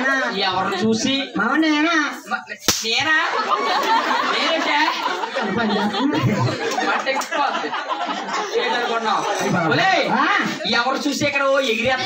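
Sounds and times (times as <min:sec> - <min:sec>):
people talking over microphone: 0:00.0 - 0:12.0.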